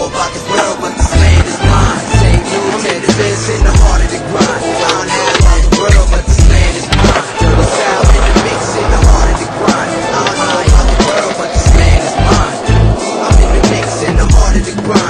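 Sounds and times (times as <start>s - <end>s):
hip hop beat with heavy bass: 0.0s - 15.0s
skateboard wheels rolling on concrete: 0.0s - 15.0s
skateboard grinding concrete ledge: 0.6s - 15.0s.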